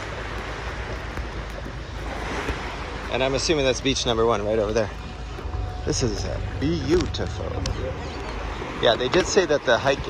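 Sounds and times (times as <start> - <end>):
small waves washing on beach: 0.0 - 10.0
wind buffeting microphone: 0.0 - 10.0.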